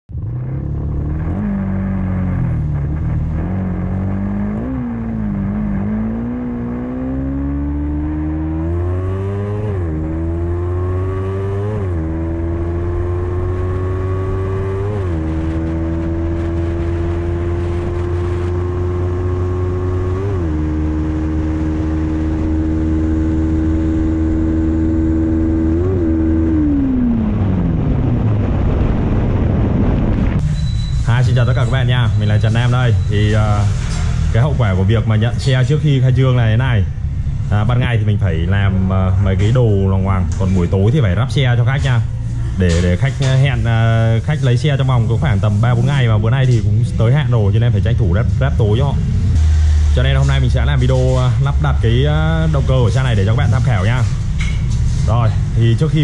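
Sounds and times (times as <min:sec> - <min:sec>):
motorcycle engine accelerating: 0:00.1 - 0:56.0.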